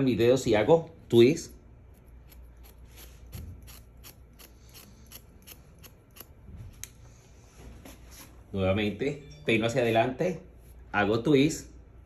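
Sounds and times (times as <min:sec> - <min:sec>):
scissors snipping hair: 0:01.9 - 0:07.0.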